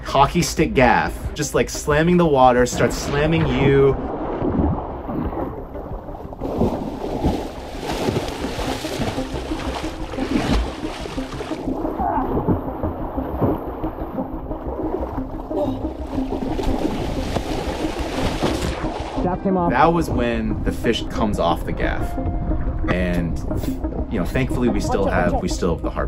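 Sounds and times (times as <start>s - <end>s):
fish tail splashing water: 4.0s - 19.2s.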